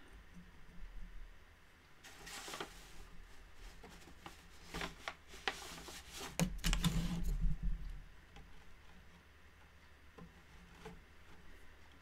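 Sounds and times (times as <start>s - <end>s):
soft swishes of yarn: 2.0s - 6.4s
loom clicks and knocks: 6.2s - 12.0s.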